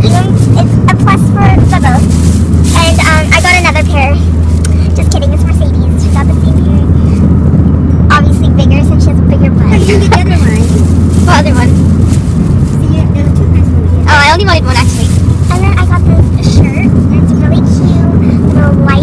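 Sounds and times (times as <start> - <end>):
person talking: 0.0 - 2.1, 2.7 - 7.2, 8.0 - 11.9, 12.7 - 19.0
car road and engine noise: 0.0 - 19.0.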